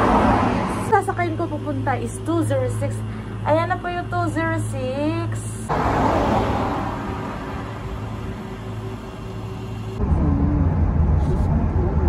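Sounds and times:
bus engine and road noise: 0.0s - 1.2s, 5.7s - 12.0s
low rumble inside moving vehicle: 5.7s - 12.0s.

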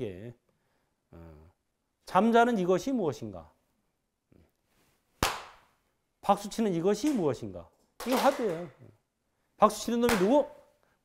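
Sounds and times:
hand clap with echo: 5.2s - 5.7s, 10.0s - 10.6s.

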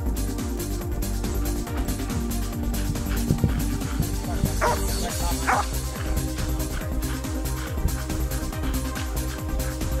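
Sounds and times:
dog barking: 4.4s - 8.0s.

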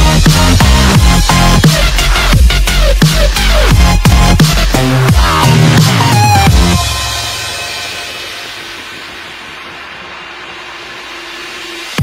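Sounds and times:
heavy bass hit: 0.0s - 8.5s
synth noise wash: 0.0s - 12.0s.

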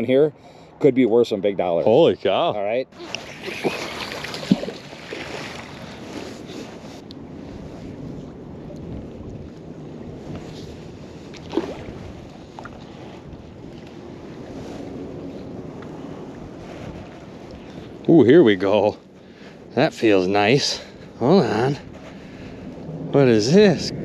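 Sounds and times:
wind buffeting microphone: 1.0s - 24.0s
river water lapping: 3.0s - 7.0s, 11.2s - 14.8s.

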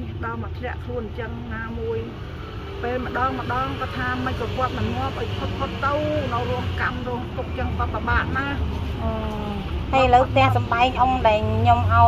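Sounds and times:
elderly woman speaking: 0.0s - 12.0s.

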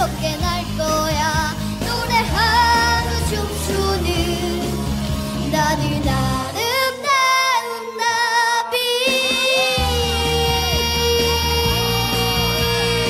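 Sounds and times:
child singing: 0.0s - 4.8s, 5.4s - 13.0s
bass line: 0.0s - 6.6s, 9.6s - 13.0s
band accompaniment: 9.0s - 13.0s.

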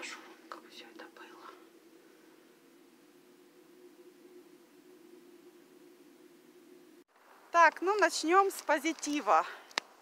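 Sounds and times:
woman whispering: 0.0s - 1.7s
steady low hum: 0.0s - 7.6s.

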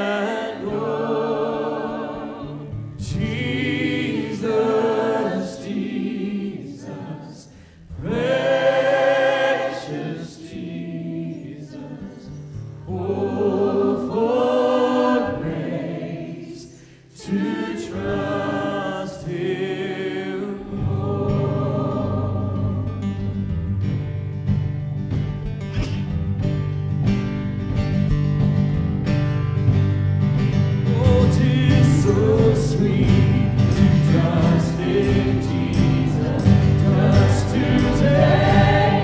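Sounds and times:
choir singing a hymn: 0.0s - 23.4s, 30.9s - 39.0s
acoustic guitar: 0.0s - 39.0s
keyboard: 0.0s - 39.0s
man singing: 30.9s - 36.2s.

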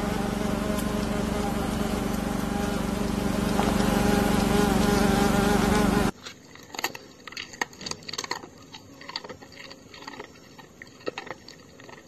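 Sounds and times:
flying insect buzzing: 0.0s - 6.1s
faint clicks and crunches: 6.1s - 12.0s.

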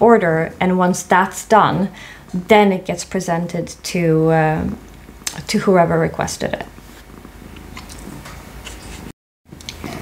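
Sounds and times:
cat purring: 4.6s - 9.1s.

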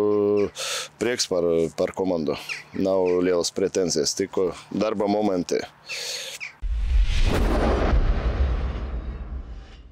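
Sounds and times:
deep cinematic boom: 6.6s - 9.9s
rushing whoosh: 6.6s - 9.9s.

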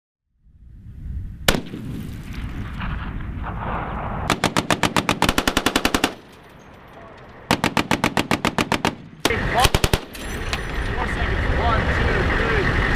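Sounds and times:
low rumble: 0.3s - 5.1s
machine-gun fire: 1.5s - 6.3s, 7.5s - 10.2s.

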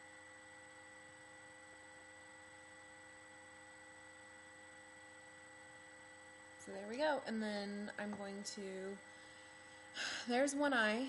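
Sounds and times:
faint electrical hum and hiss: 0.0s - 11.0s.

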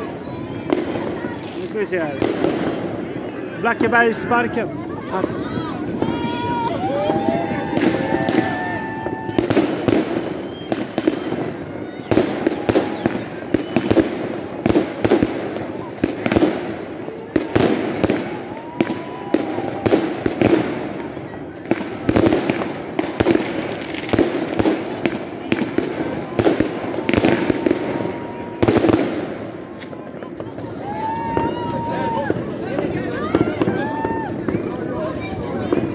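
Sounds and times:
fireworks bangs: 0.0s - 35.9s
people's voices: 0.0s - 35.9s
rockets bursting: 0.0s - 35.9s.

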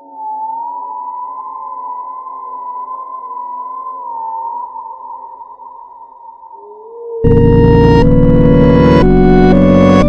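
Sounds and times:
eerie electronic drone: 0.0s - 10.0s.

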